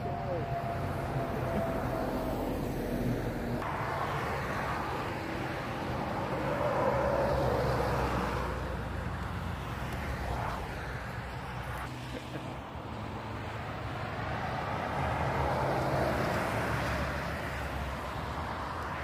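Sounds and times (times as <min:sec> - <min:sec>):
trucks driving past: 0:00.0 - 0:19.0.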